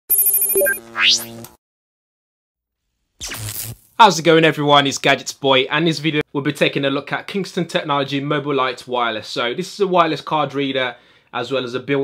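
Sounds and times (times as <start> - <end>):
electronic high tone trill: 0.1 - 1.4
electronic rising sweep: 0.1 - 1.4.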